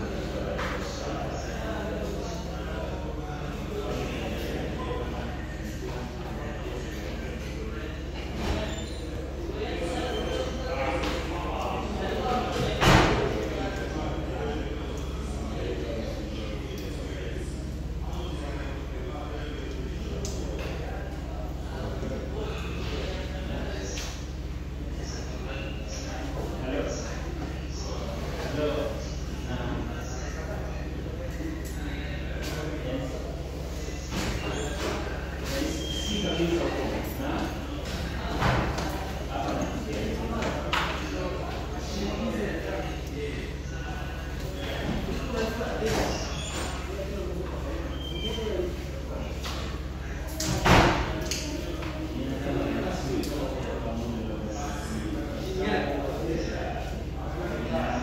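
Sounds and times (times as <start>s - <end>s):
people speaking: 0.0s - 58.0s
people talking: 0.0s - 58.0s
steady low hum: 0.0s - 58.0s.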